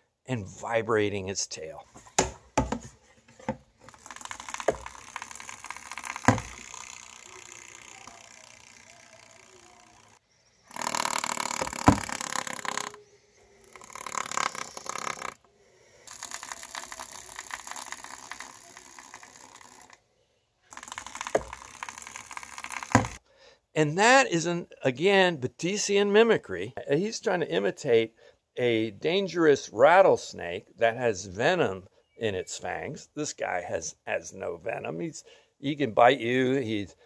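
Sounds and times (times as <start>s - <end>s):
snake tail buzzing rattle: 3.8s - 13.0s, 13.6s - 15.4s, 16.0s - 20.0s, 20.7s - 23.2s.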